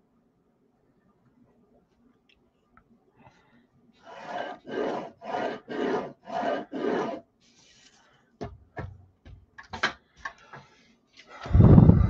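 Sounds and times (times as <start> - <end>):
pencil scratching on paper: 4.0 - 7.3.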